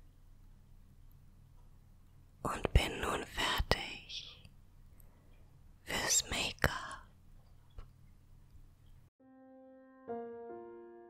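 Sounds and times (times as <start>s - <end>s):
woman whispering: 2.4s - 4.5s, 5.8s - 7.2s.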